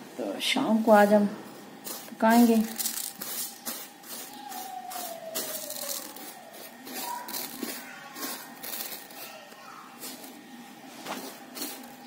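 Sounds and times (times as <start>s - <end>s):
rice rustling on steel plate: 1.8s - 12.0s.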